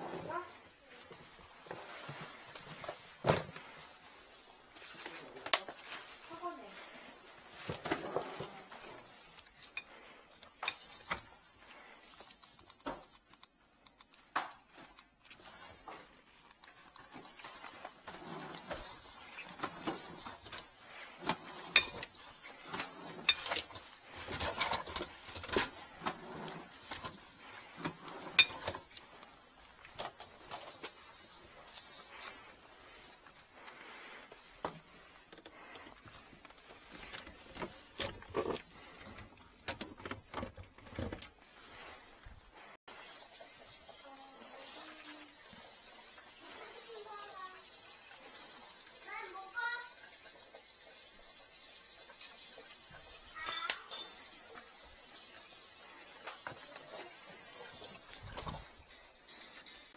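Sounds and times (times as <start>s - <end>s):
cable rustling: 0.0s - 42.8s
clicks and knocks from handling equipment: 12.0s - 32.5s, 34.4s - 41.6s.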